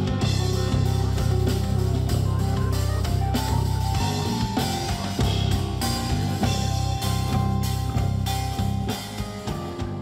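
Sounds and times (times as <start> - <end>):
drum kit beat: 0.0 - 10.0
electric bass line: 0.0 - 10.0.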